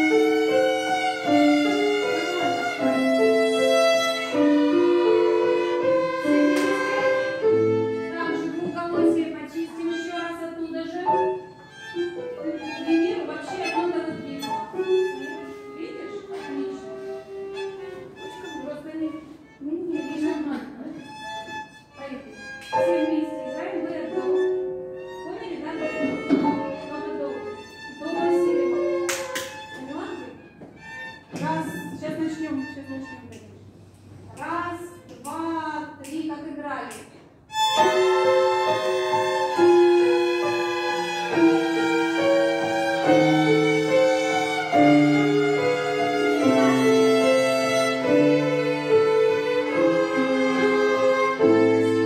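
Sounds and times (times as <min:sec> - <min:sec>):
violin ensemble playing: 0:00.0 - 0:33.6, 0:37.4 - 0:52.0.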